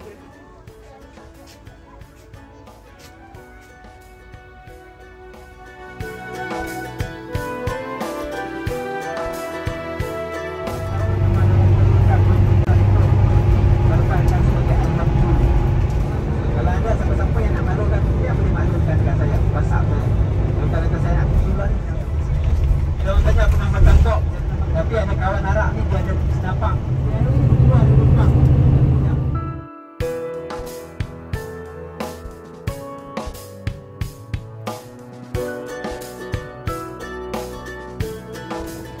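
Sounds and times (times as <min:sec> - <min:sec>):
people talking: 0:10.8 - 0:29.4
vehicle engine rumble: 0:10.8 - 0:29.6.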